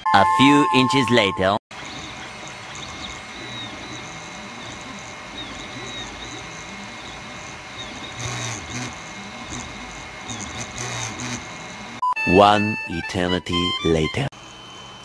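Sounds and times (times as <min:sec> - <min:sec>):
stepper motors whining: 0:01.7 - 0:12.0
cooling fan hiss: 0:01.8 - 0:12.0.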